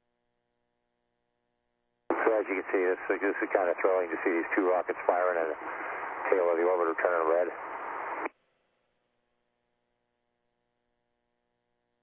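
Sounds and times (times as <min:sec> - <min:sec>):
faint steady hum: 0:00.0 - 0:08.4
man's voice through radio: 0:02.1 - 0:08.3.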